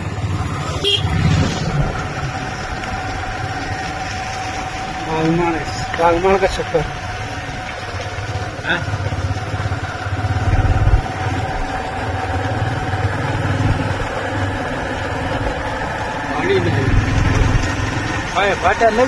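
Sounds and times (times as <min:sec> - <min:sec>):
vehicle engine rumbling: 0:00.0 - 0:19.0.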